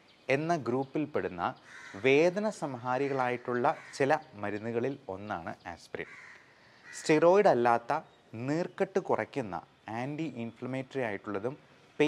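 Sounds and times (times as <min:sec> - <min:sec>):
man speaking: 0:00.3 - 0:06.1, 0:07.0 - 0:11.6.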